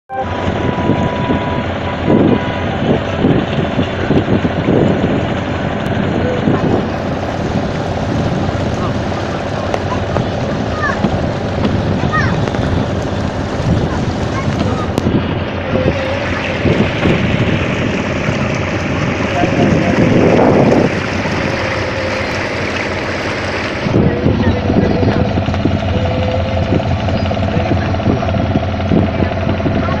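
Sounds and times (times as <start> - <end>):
motorboat engine droning: 0.1 - 30.0
people talking: 6.0 - 7.3, 8.2 - 12.8, 13.7 - 22.3, 23.8 - 30.0.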